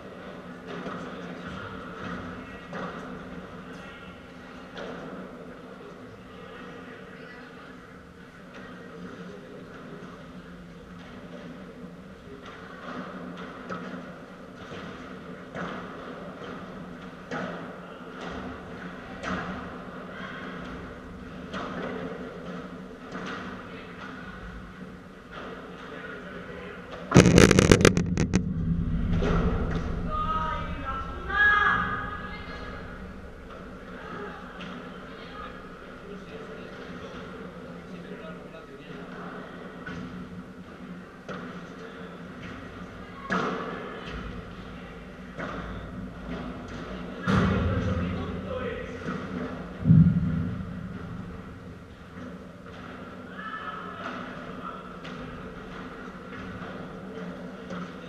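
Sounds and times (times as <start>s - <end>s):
low hall hum: 22.3s - 58.0s
rattling and knocking on microphone: 27.1s - 31.0s
low rumble: 27.1s - 34.6s.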